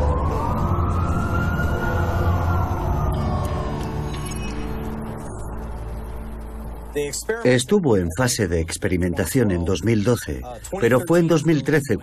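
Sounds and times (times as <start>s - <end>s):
emergency siren wailing: 0.0s - 5.3s
city street ambience: 0.0s - 12.0s.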